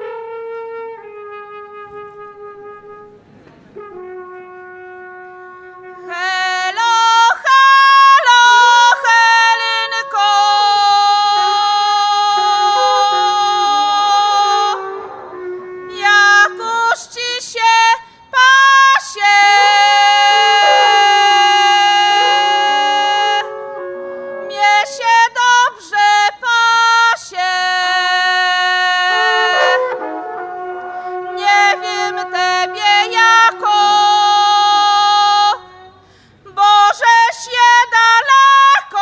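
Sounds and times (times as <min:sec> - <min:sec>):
wooden horns holding long notes: 0:00.0 - 0:16.9, 0:19.0 - 0:26.2, 0:28.0 - 0:36.0
woman singing: 0:06.0 - 0:15.0, 0:15.9 - 0:23.5, 0:24.5 - 0:29.9, 0:31.3 - 0:39.0.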